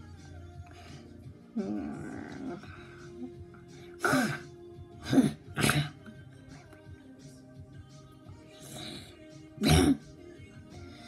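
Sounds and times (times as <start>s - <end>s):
faint background music: 0.0s - 11.0s
person clearing throat: 4.0s - 6.1s, 9.6s - 10.1s.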